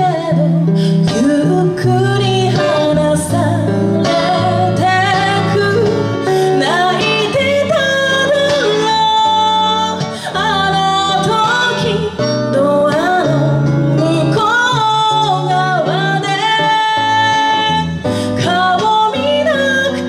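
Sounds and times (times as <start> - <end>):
guitar accompaniment: 0.0 - 20.0
woman singing into microphone: 0.0 - 20.0.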